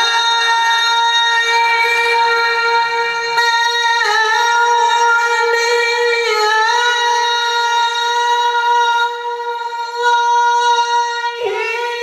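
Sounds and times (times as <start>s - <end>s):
man singing through a pa system: 0.0s - 12.0s.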